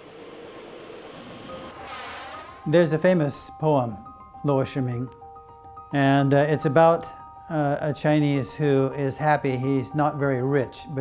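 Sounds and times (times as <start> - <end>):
whoosh riser with rising whistle: 0.0 - 2.8
faint sustained music notes: 0.0 - 11.0.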